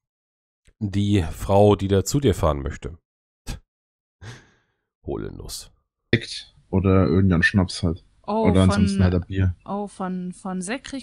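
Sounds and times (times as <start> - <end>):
person exhaling: 4.2 - 4.8.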